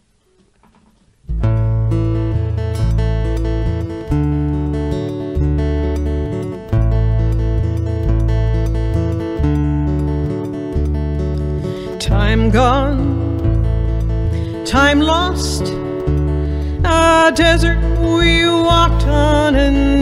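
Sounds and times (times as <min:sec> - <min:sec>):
strummed acoustic guitar: 0:00.3 - 0:20.0
bass guitar low notes: 0:01.3 - 0:20.0.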